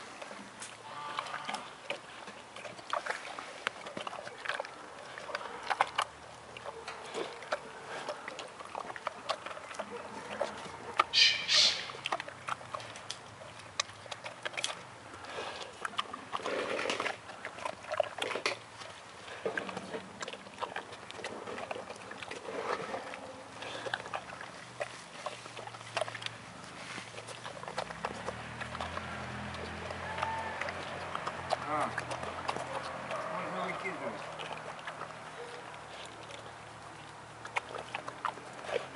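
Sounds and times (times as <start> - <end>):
bear chewing grapes: 0.0 - 38.9.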